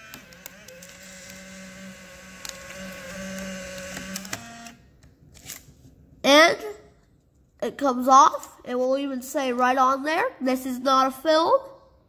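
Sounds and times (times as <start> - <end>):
camera film ejection motor whirring: 0.0 - 4.8.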